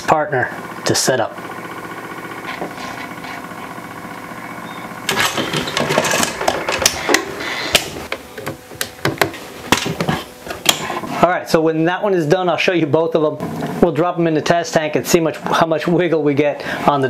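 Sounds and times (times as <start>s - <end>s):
small electric motor humming: 0.5s - 11.2s
switches and latches clicking: 5.1s - 10.8s.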